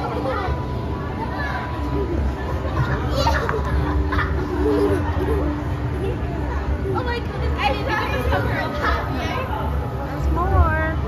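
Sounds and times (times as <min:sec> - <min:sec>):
children chattering: 0:00.0 - 0:10.9
steady low hum: 0:00.0 - 0:11.0.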